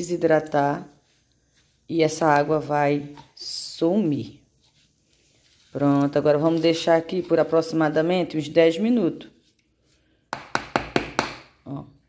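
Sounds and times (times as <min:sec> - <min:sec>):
metal spoon tapping plastic bowl: 0:10.4 - 0:11.5.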